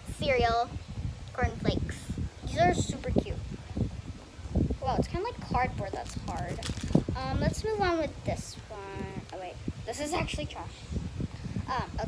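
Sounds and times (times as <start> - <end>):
plastic bags crinkling: 6.0 - 7.1.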